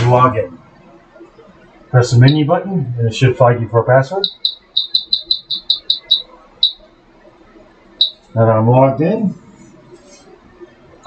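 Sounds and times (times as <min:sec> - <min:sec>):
keypad beeps: 0:04.2 - 0:06.8, 0:08.0 - 0:08.2.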